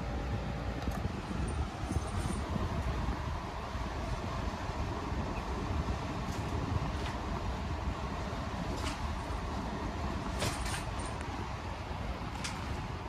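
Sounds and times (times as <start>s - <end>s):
wall air conditioner running: 0.0s - 13.0s.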